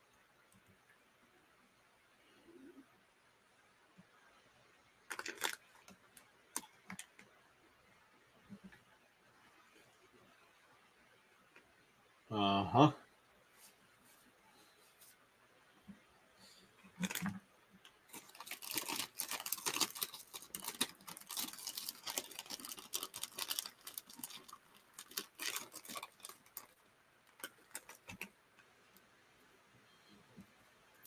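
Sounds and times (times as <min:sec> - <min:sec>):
crackling and rustling handling noise: 0:05.1 - 0:07.4, 0:13.4 - 0:29.1.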